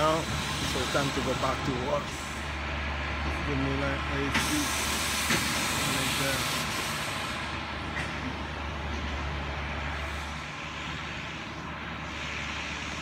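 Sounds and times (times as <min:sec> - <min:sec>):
mechanical drone with hiss: 0:00.0 - 0:02.6, 0:03.4 - 0:08.4, 0:09.2 - 0:13.0.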